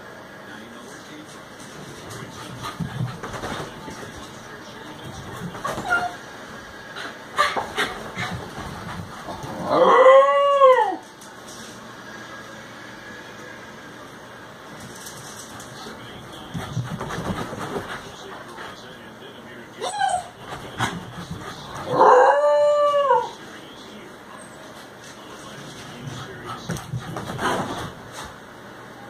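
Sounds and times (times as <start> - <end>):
small dog howling: 9.6 - 11.0, 19.8 - 20.4, 21.9 - 23.4
dog yelp: 19.8 - 20.4.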